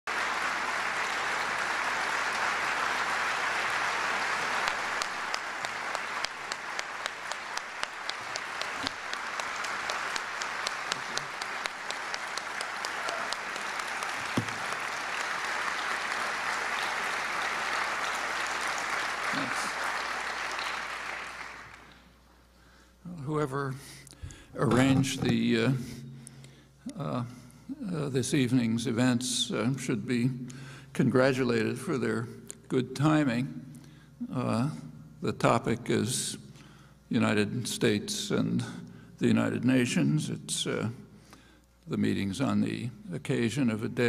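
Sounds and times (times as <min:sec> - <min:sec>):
audience applauding: 0:00.0 - 0:22.0.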